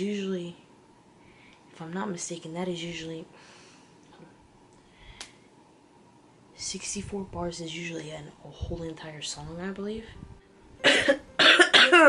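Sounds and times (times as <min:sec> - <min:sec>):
woman coughing: 0:10.8 - 0:12.0.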